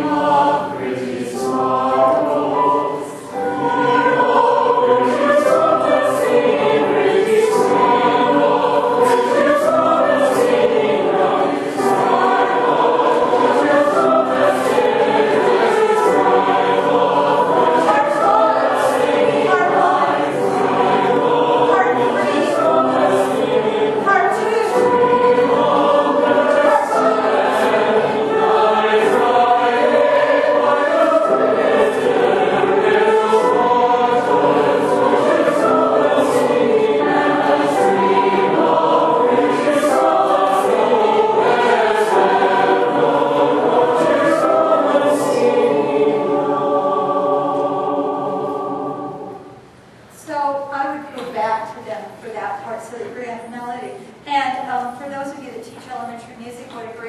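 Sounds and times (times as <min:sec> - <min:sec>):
choir singing: 0:00.0 - 0:49.9.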